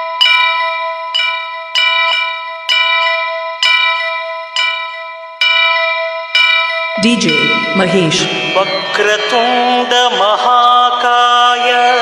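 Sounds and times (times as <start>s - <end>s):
bell struck ringing: 0.0s - 10.6s.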